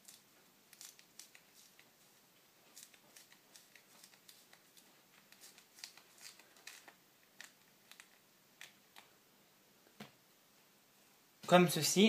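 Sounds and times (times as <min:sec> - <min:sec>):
peel crackling and tearing: 0:00.0 - 0:01.8, 0:02.7 - 0:09.1.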